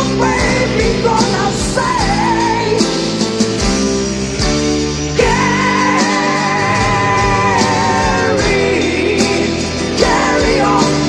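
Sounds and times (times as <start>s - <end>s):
hard rock band playing: 0.0s - 11.0s
wavering held lead note: 6.2s - 8.9s.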